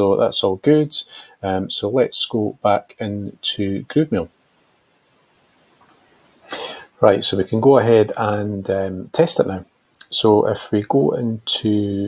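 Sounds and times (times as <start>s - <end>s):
man breathy mouth sound: 6.4s - 6.9s.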